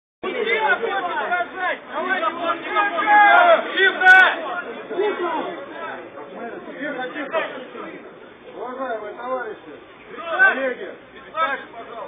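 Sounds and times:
dense crowd chatter: 0.2s - 12.0s.

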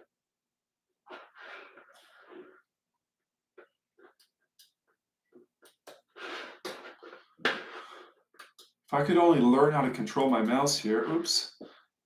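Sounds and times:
person breathing: 6.1s - 8.2s.

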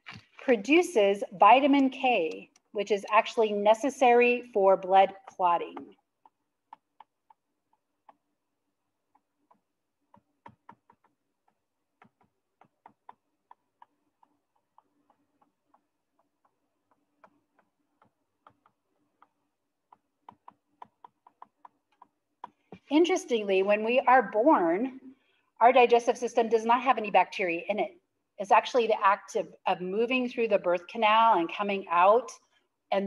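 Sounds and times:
stylus pen tapping on tablet: 1.6s - 3.4s, 5.2s - 8.3s, 9.0s - 22.8s.

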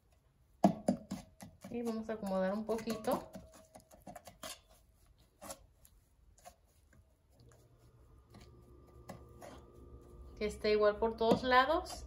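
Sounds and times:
spatula scraping caramel in pan: 1.0s - 12.0s
faint steady hum: 1.7s - 12.0s.

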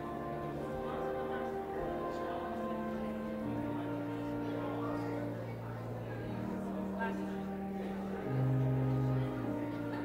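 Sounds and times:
organ playing sustained chords: 0.0s - 10.0s.

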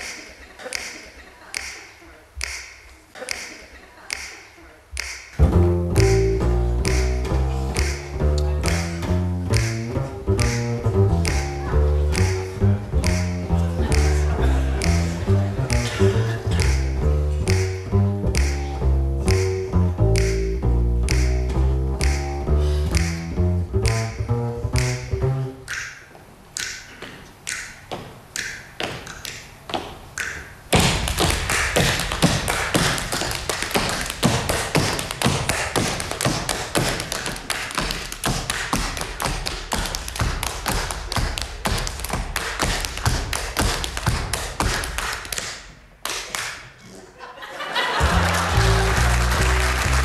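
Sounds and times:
string music: 5.4s - 25.7s, 48.0s - 50.0s
tap dancing on wooden floor: 30.8s - 45.5s.

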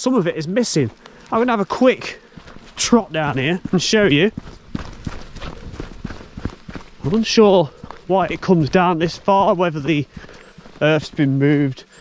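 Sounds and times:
footsteps on earth track: 0.0s - 12.0s.

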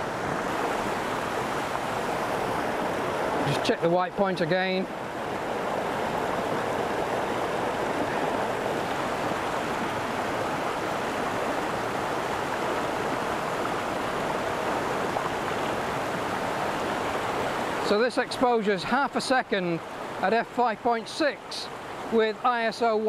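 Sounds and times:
stream rushing over rocks: 0.0s - 23.0s.

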